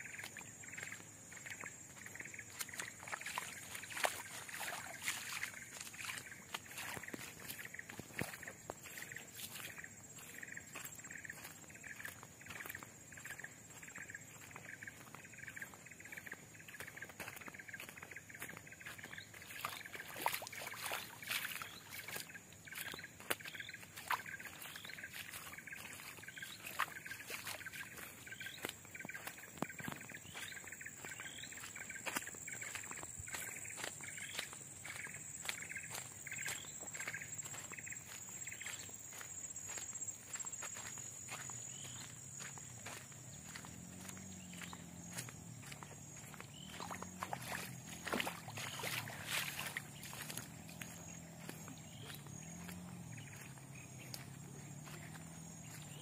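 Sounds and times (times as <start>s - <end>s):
footsteps on muddy dirt road: 0.0s - 56.0s
high-pitched insect drone: 0.0s - 56.0s
insects chirping: 0.0s - 56.0s.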